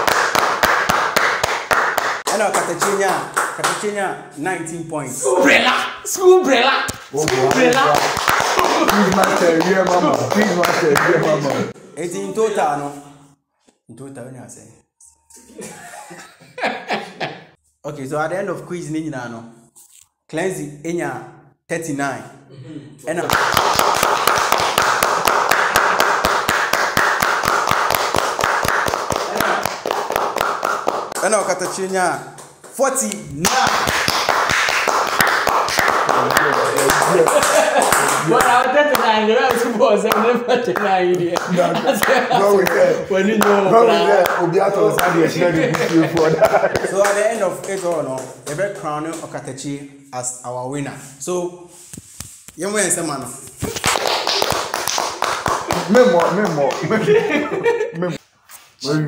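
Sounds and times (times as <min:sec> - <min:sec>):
hands clapping: 0:00.0 - 0:04.0, 0:06.8 - 0:11.8, 0:23.2 - 0:49.5, 0:52.0 - 0:57.4.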